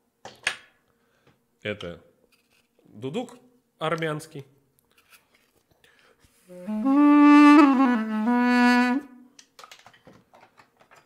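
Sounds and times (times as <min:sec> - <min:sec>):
duduk held low notes: 0:06.5 - 0:09.2.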